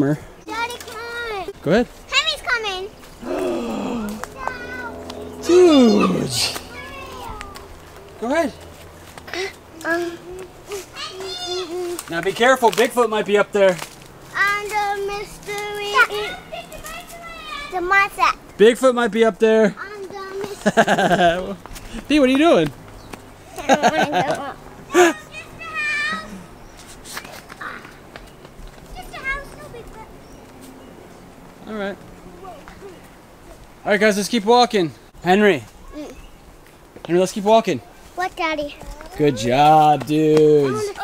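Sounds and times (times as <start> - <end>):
faint gliding voice sounds: 3.2 - 7.4
child crying out: 3.2 - 7.6
small feet scuffing on dirt: 7.5 - 13.0.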